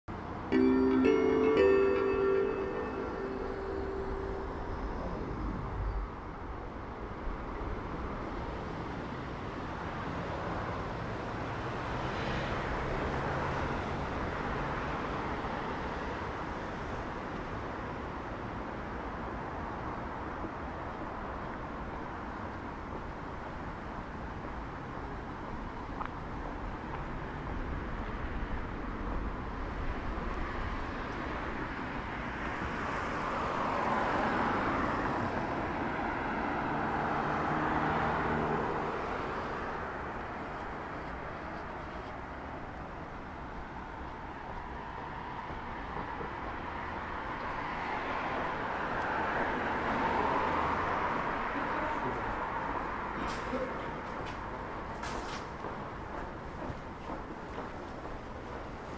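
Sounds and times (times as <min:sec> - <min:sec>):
cars passing on road: 0:00.1 - 0:58.9.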